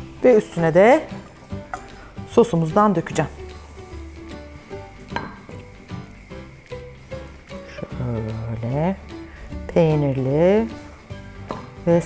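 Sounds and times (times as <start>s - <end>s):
soft background music: 0.0s - 12.0s
light glass clinks: 5.1s - 5.6s.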